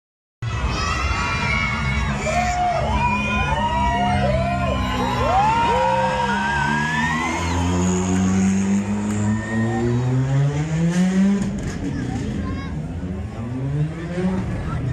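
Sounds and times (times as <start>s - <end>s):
crowd shouting and whooping: 0.4s - 10.4s
rally car engine revving: 4.8s - 14.9s.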